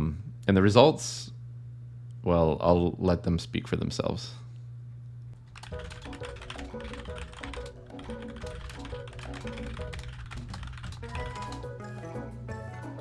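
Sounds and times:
computer keyboard typing: 5.5s - 11.8s
background music: 5.6s - 13.0s.

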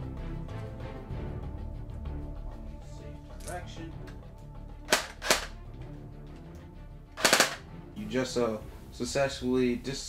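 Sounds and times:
background music: 0.0s - 10.0s
airsoft rifle shots: 4.9s - 5.5s, 7.2s - 7.6s.

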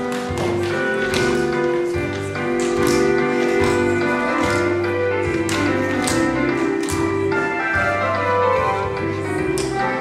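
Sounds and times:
tap shoes striking stage floor: 0.0s - 7.3s
recorded dance music: 0.0s - 10.0s.

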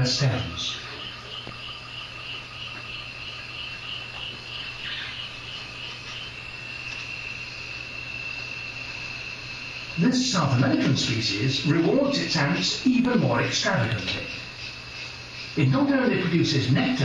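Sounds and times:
insects chirping: 0.0s - 17.0s.

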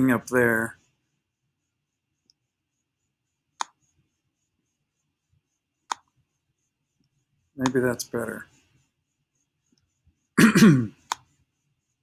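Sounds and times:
sharp click: 5.9s - 6.1s
man clearing throat: 10.4s - 11.0s.

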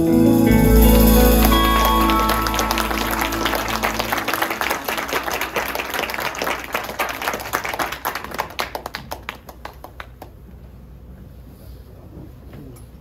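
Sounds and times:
final chord of song: 0.0s - 6.2s
audience applauding: 0.8s - 10.3s.

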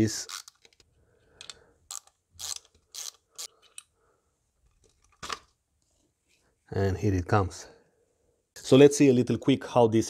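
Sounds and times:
hand ratchet clicking: 1.4s - 3.5s.

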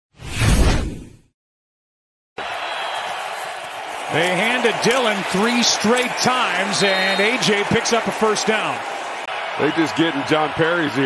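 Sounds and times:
stadium crowd noise: 2.4s - 11.0s.

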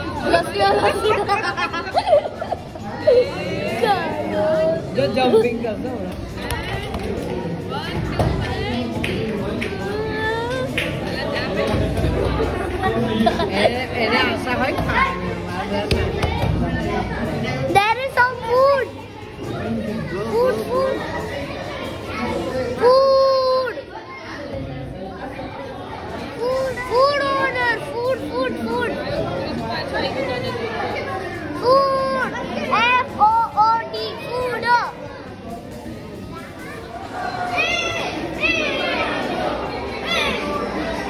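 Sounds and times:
children chattering: 0.0s - 41.0s
children shouting: 19.6s - 24.5s, 25.7s - 29.2s, 30.9s - 35.1s, 36.4s - 41.0s.

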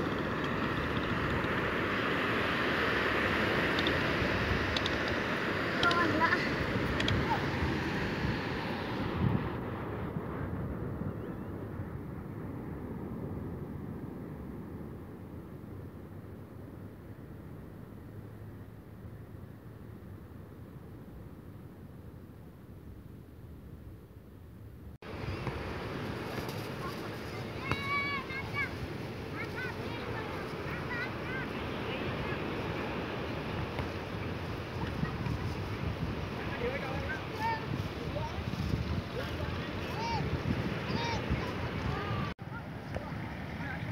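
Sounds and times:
surf washing: 0.0s - 11.1s, 25.0s - 43.9s
wind noise on microphone: 0.0s - 18.3s, 20.7s - 42.4s.

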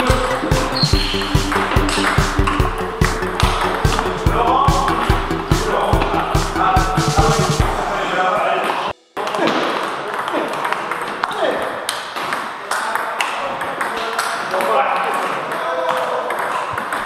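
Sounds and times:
voices chattering: 0.0s - 11.9s
table tennis balls clicking: 0.9s - 4.0s, 9.8s - 17.0s.

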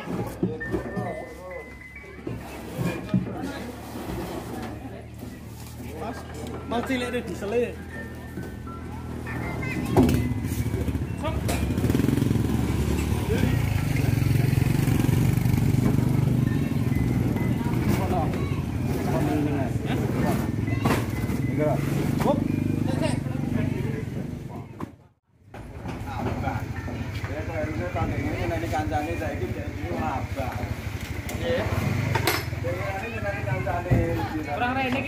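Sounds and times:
men talking at work: 0.0s - 35.0s.

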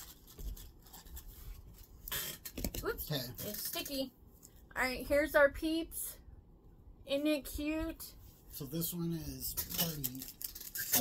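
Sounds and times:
plastic package rustling: 9.6s - 11.0s.

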